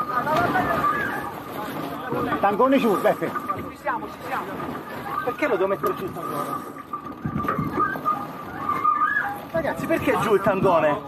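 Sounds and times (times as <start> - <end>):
wind buffeting microphone: 0.0 - 11.0
steady high whistle-like tone: 5.0 - 10.5.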